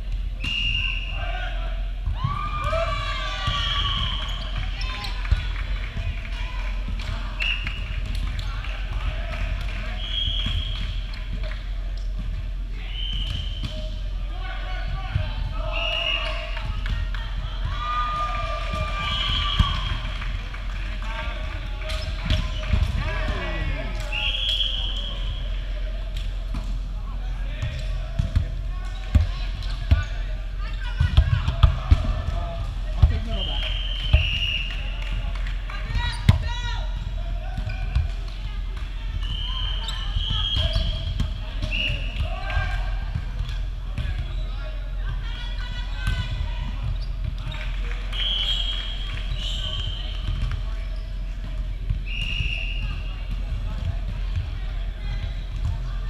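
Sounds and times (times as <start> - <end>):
players calling out: 13.9 - 25.7.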